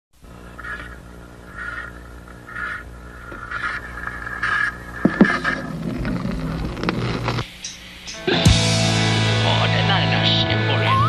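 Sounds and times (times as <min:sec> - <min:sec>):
amplifier hum: 0:00.2 - 0:11.0
vinyl record clicks and scrapes: 0:00.3 - 0:07.8.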